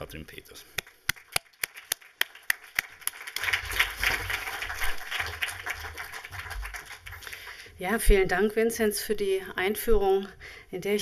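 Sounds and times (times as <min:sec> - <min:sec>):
person clapping close: 0:00.8 - 0:07.4
audience applause: 0:01.1 - 0:07.7.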